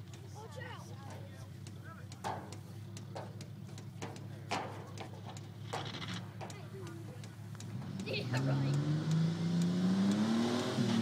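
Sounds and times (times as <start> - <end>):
truck engine idling hum: 0.0 - 8.9
faint voices: 0.2 - 8.8
sharp clicks: 5.0 - 8.1, 8.7 - 10.3.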